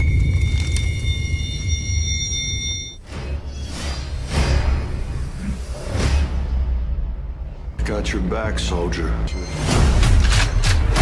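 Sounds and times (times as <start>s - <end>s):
high steady ringing tones: 0.0s - 3.1s.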